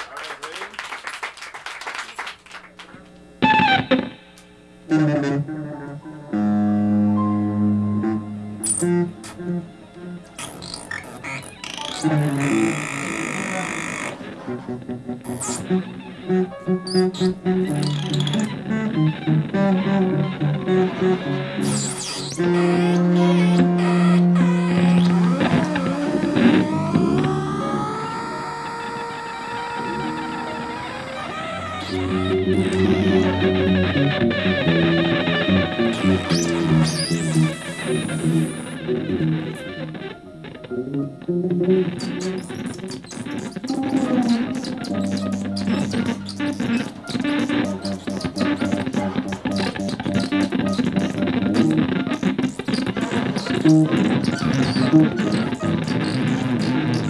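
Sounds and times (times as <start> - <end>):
live band music: 14.2 - 57.0.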